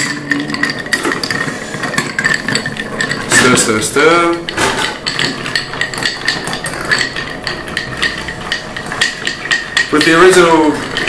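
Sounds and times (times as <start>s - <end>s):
bar spoon clinking ice in glass: 0.0s - 11.0s.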